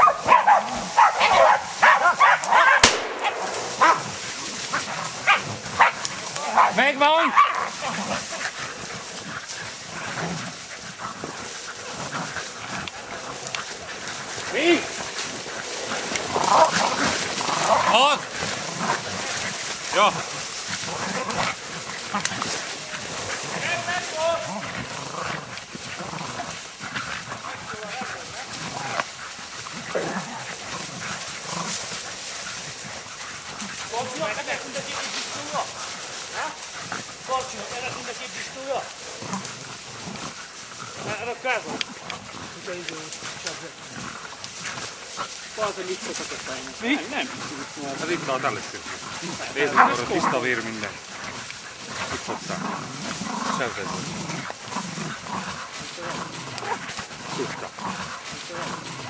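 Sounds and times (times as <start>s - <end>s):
dogs barking: 0.0s - 40.4s, 41.0s - 58.7s.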